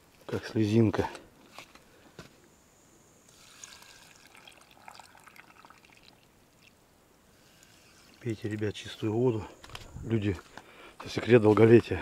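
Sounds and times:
water poured into glass jar: 3.3 - 6.7.

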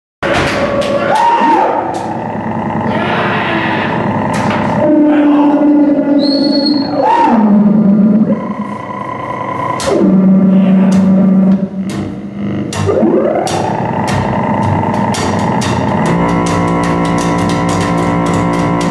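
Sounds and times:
distorted swooping bass tones: 0.2 - 18.9
high whistling tone: 6.0 - 7.6.

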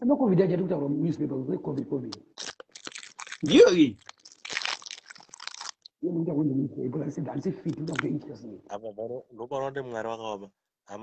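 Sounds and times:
chewing crunchy food: 2.3 - 6.0.

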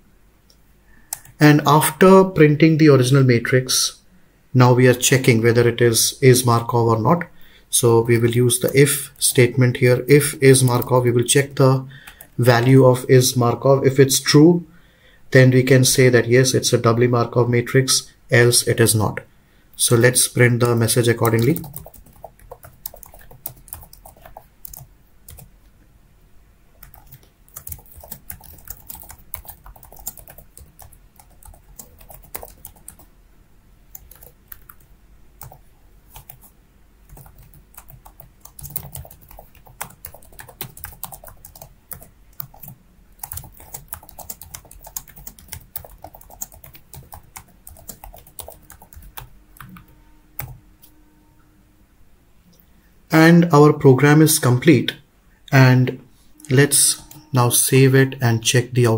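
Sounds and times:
computer keyboard typing: 1.1 - 1.4, 7.8 - 11.4, 12.0 - 12.9, 19.9 - 25.5, 26.8 - 33.1, 33.9 - 36.5, 37.1 - 50.6.

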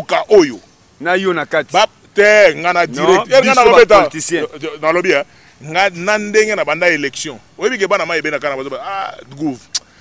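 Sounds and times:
man speaking forcefully: 0.0 - 9.7.

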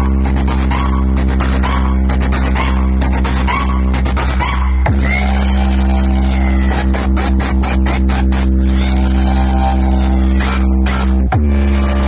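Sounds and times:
deep bass hum: 0.0 - 12.0
loud dance music: 0.0 - 12.0.

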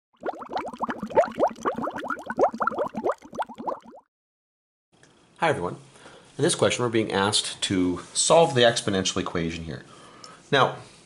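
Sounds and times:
water bubbling: 0.2 - 4.1.

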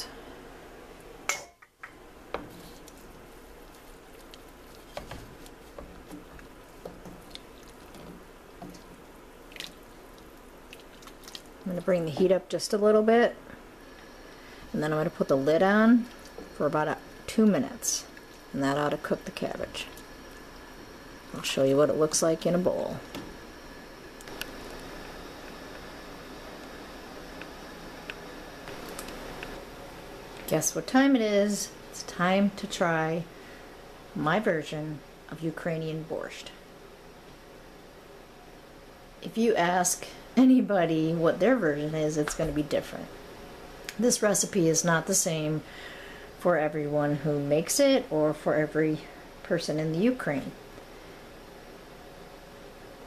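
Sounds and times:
background hiss: 0.0 - 53.0
faint background hum: 0.0 - 53.0.

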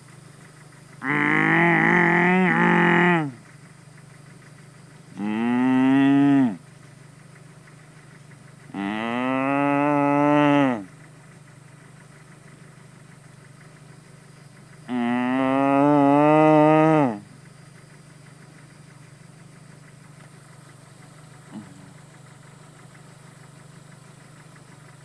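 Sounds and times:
person mooing: 1.0 - 3.3, 5.2 - 6.6, 8.8 - 10.9, 14.9 - 17.2.

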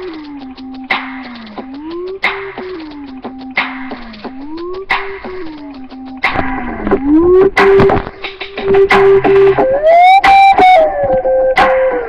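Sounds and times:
instrumental hip-hop beat: 0.0 - 12.0.

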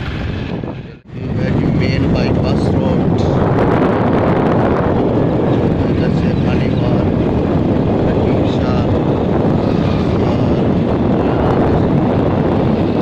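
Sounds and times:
wind buffeting microphone: 0.0 - 13.0.

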